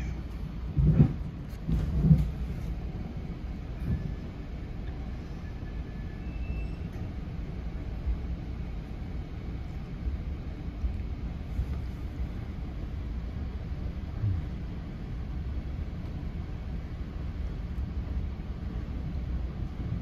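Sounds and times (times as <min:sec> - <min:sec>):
train rumbling inside coach: 0:00.0 - 0:20.0.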